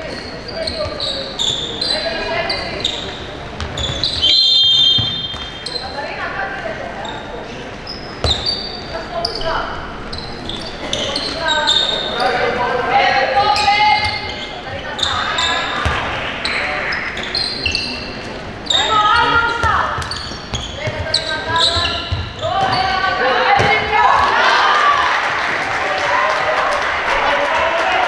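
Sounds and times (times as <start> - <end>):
shoes squeaking: 0.0 - 12.5, 13.4 - 24.2
whistle blast: 4.1 - 5.4
players shouting: 22.4 - 28.0.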